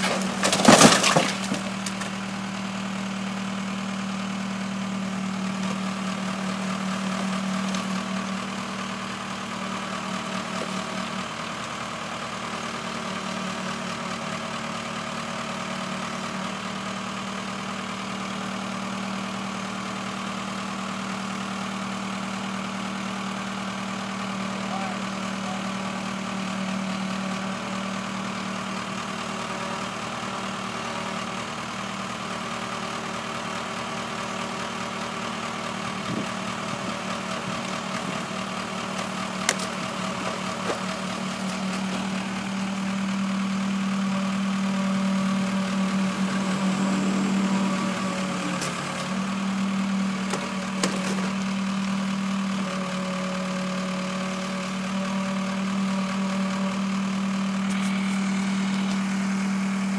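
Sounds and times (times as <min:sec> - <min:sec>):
tractor engine idling: 0:00.0 - 0:59.9.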